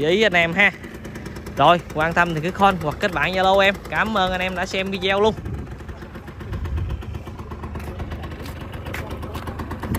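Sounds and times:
two-stroke engine idling: 0.0 - 9.9.

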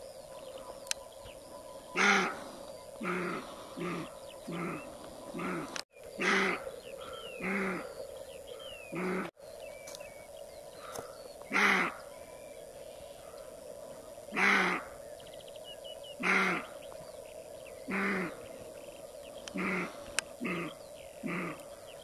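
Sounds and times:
faint bird chirps: 0.0 - 22.0
deer barking: 2.0 - 6.7, 8.9 - 9.3, 11.5 - 12.0, 14.3 - 14.9, 16.2 - 16.7, 19.6 - 21.6.

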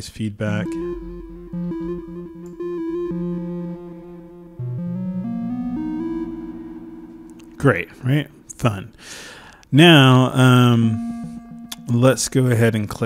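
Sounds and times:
synthesizer notes with echoes: 0.6 - 9.1, 10.0 - 12.5.

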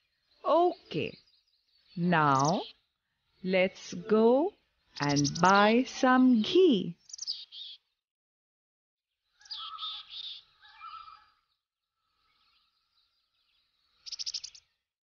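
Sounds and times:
bird chirping: 0.0 - 8.0, 9.2 - 14.9.

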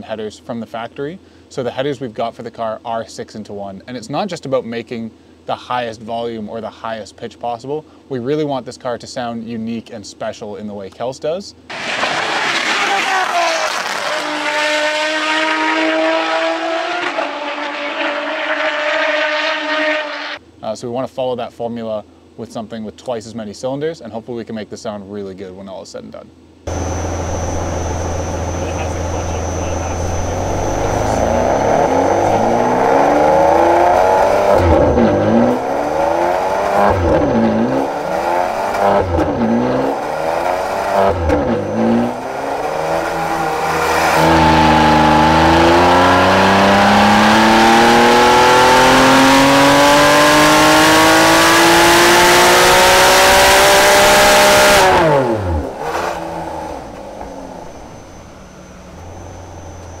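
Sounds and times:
car engine revving on dyno: 11.7 - 20.4, 26.7 - 60.0
dyno rollers coasting: 26.7 - 48.7, 55.0 - 60.0.

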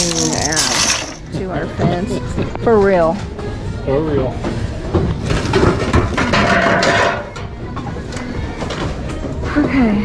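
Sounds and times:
household goods clattering in bin: 0.0 - 1.3, 4.9 - 7.4
background music: 0.0 - 10.0.

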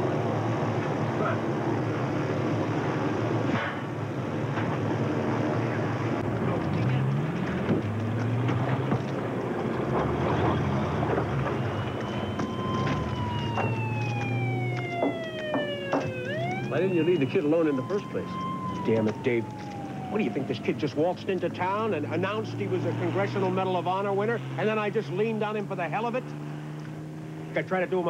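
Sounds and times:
vehicle siren: 5.0 - 27.5
background clatter: 6.2 - 16.4.

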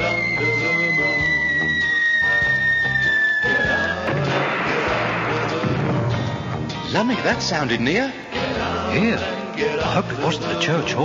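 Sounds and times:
falling bomb whistle: 0.0 - 5.6
band music: 0.0 - 11.0
explosion crash: 0.4 - 7.0.

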